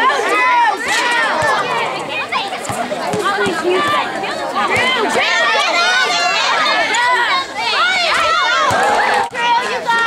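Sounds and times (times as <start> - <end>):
children shouting and cheering: 0.0 - 10.0.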